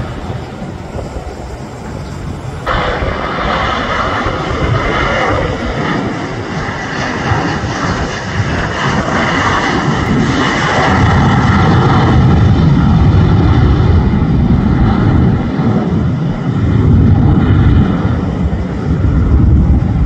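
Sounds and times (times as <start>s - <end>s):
jet engine whine: 0.0s - 20.0s
jet engines rumbling at takeoff: 0.0s - 20.0s.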